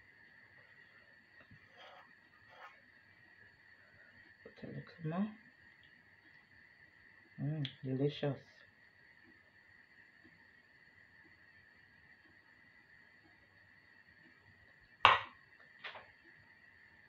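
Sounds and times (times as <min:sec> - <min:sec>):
faint high whine: 0:00.0 - 0:17.0
metal spoon knocking on surface: 0:15.1 - 0:15.3.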